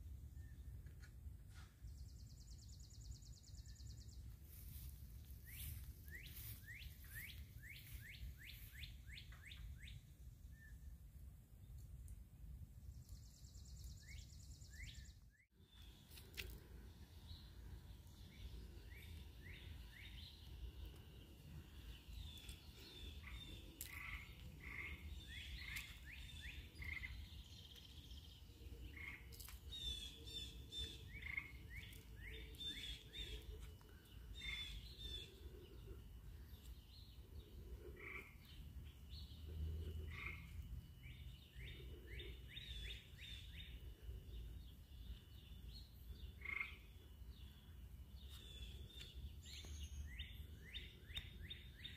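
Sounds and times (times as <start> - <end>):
small birds chirping: 0.2 - 11.0, 11.6 - 51.9.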